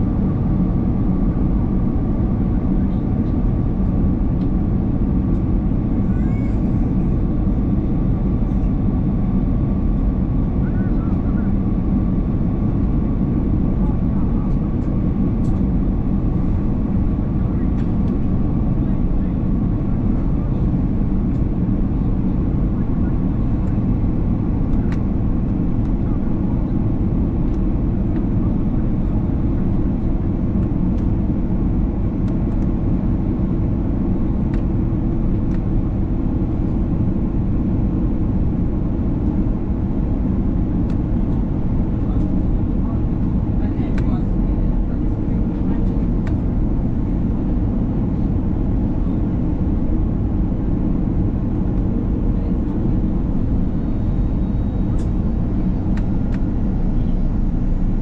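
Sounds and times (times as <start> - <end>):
airplane cabin rumble: 0.0 - 58.0.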